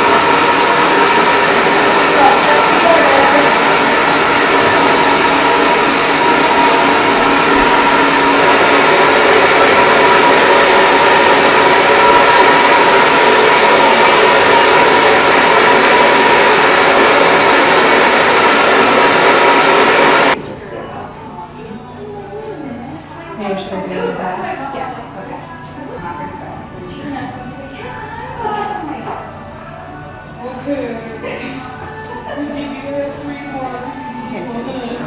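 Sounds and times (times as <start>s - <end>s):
hair dryer running: 0.0s - 20.4s.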